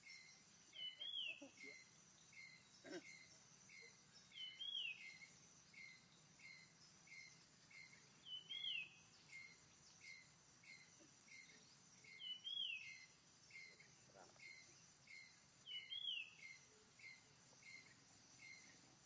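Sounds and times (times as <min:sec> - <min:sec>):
high insect drone: 0:00.0 - 0:19.0.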